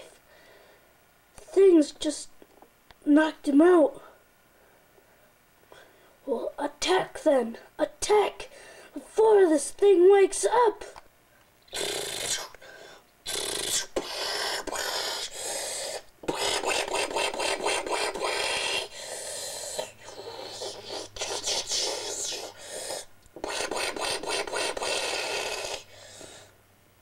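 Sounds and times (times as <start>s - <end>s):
child making mouth sound effects: 11.7s - 12.6s, 13.2s - 25.9s.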